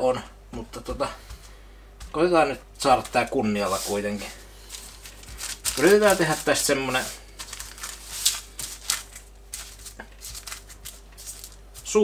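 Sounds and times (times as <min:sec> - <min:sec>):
paper rustling and crinkling: 0:02.8 - 0:12.0.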